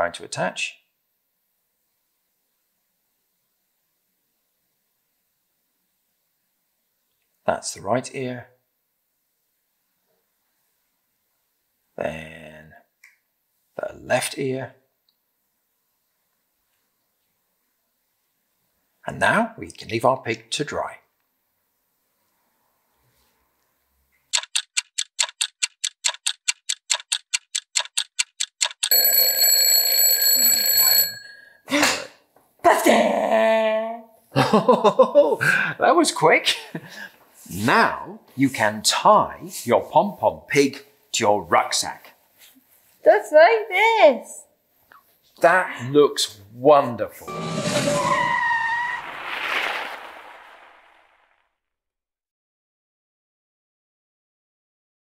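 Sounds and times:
clock ticking fast: 24.3s - 29.0s
hissing transition effect: 47.3s - 51.4s.

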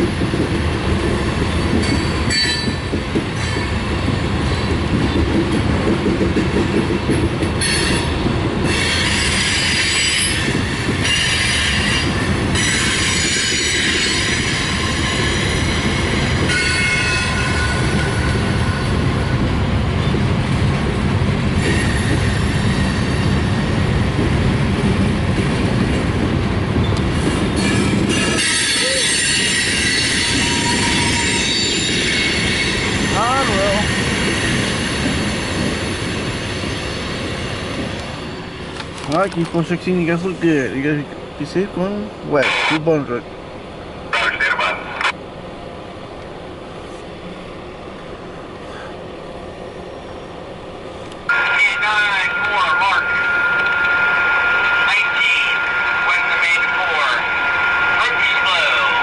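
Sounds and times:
train wheels rumbling on rail: 0.0s - 59.0s
train wheels squealing: 7.6s - 18.4s, 21.6s - 23.4s, 26.8s - 38.6s.

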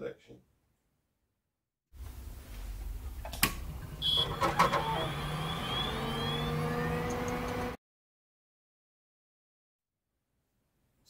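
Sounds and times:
rising tones: 3.7s - 7.8s.

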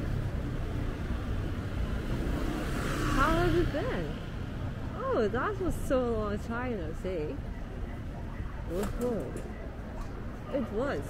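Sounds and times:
city hubbub: 0.0s - 11.0s
low rumble of traffic: 0.0s - 11.0s.

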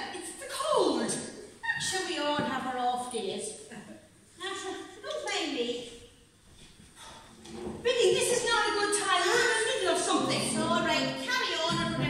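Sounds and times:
person speaking: 7.4s - 12.0s
faint low sound: 10.0s - 12.0s.

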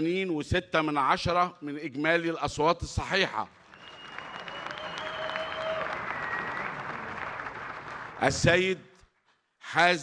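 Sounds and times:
audience applauding: 3.5s - 8.5s.

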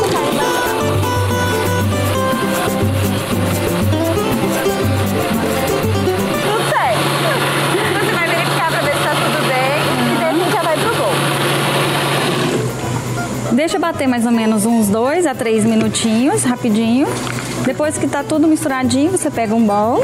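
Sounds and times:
electric blender running: 0.0s - 13.0s
acoustic guitar music with bass: 0.0s - 20.0s
voices: 6.4s - 11.3s.

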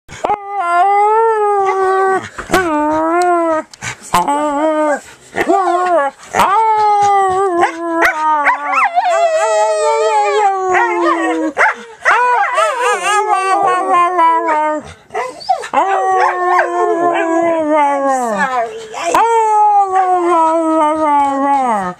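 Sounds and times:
dog howling: 4.5s - 21.9s.

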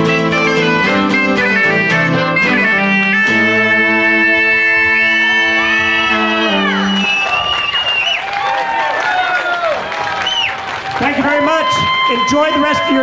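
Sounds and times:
folk band playing held chord: 0.0s - 7.3s
audience cheering and whooping: 4.9s - 13.0s.

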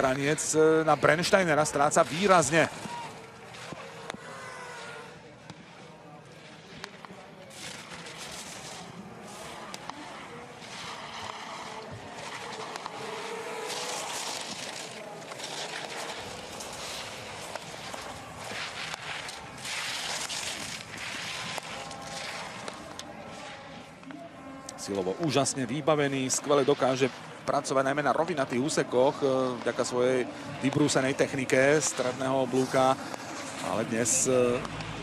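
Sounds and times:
ski edges scraping on hard snow: 5.7s - 24.0s, 24.8s - 35.0s.

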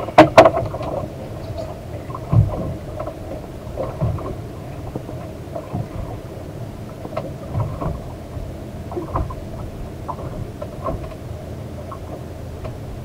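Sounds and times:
waves slapping boat hull: 0.0s - 13.0s
wind buffeting microphone: 0.0s - 13.0s.

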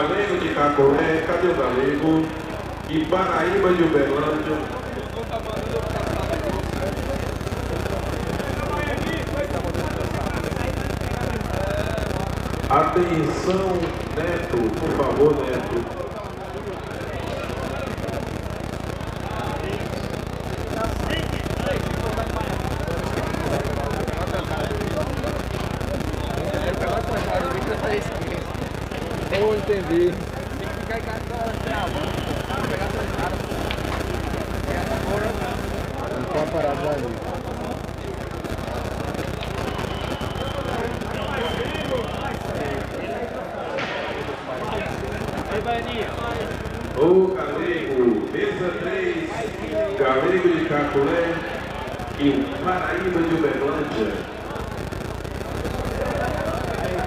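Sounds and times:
crowd chatter: 0.0s - 57.0s.

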